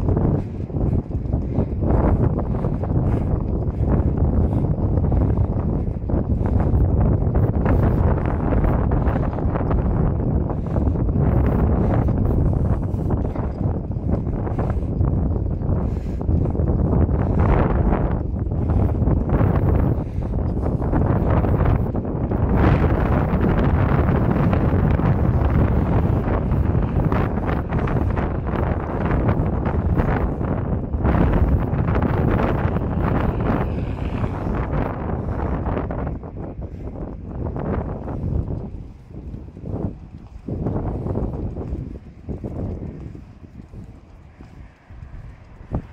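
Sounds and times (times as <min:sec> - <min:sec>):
wind buffeting microphone: 0:00.0 - 0:45.9.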